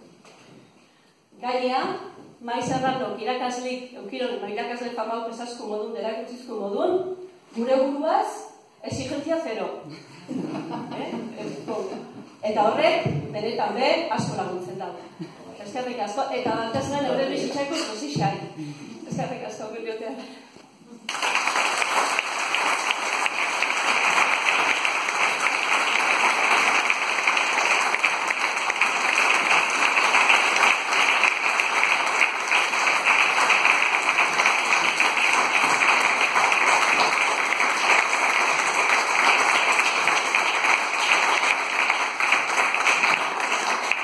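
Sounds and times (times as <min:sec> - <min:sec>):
audience applause: 0:21.1 - 0:44.0.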